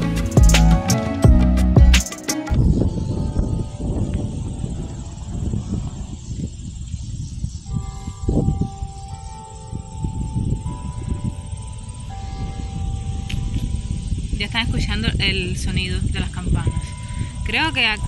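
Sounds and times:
wind rumble on microphone: 2.5s - 18.0s
church bells ringing: 7.7s - 15.3s.

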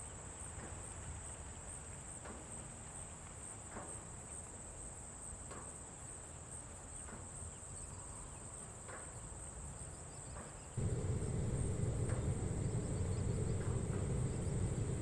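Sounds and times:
crickets trilling: 10.8s - 15.0s.

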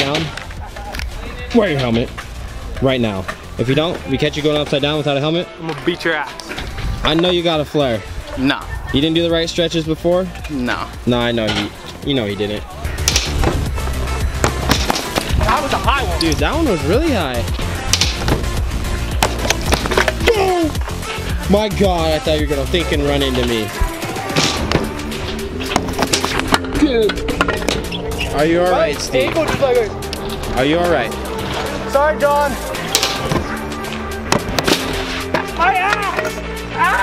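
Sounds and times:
music with steady bass: 6.6s - 37.0s
scooter hitting concrete: 13.0s - 13.6s, 14.4s - 15.8s, 17.9s - 18.5s, 32.9s - 33.5s.

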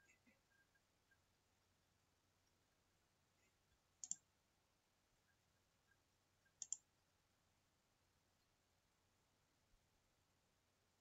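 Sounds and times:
computer mouse double-clicking: 4.0s - 4.2s, 6.6s - 6.8s.

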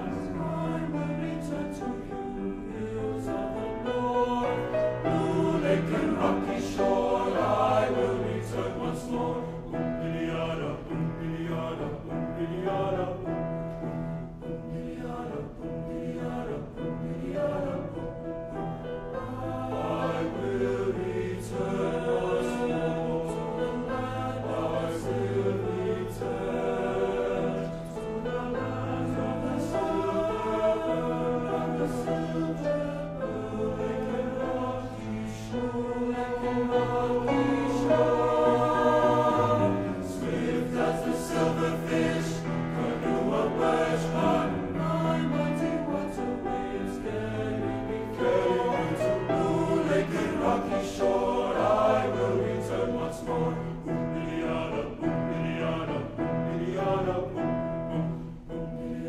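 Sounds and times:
men's choir singing: 0.0s - 59.0s.

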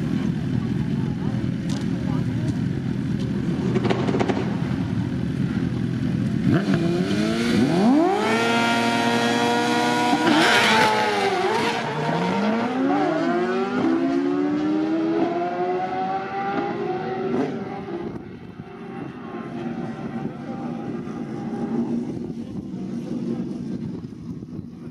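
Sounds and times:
motorcycle engines revving: 0.0s - 24.9s.

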